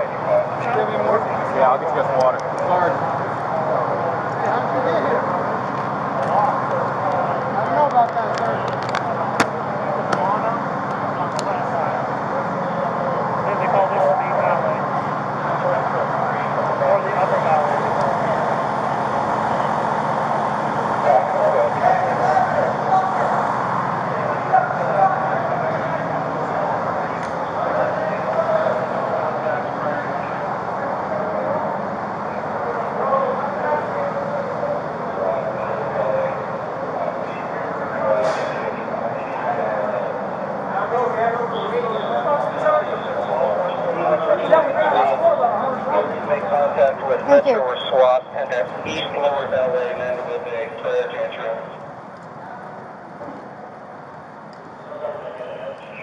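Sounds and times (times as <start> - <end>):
din of indistinct voices: 0.0 - 56.0
running vehicles: 0.0 - 56.0.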